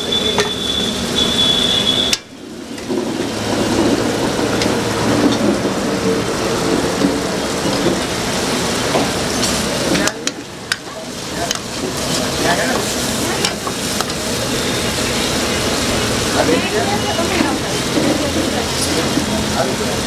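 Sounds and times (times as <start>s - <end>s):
gravy sizzling in a pan: 7.4s - 20.0s.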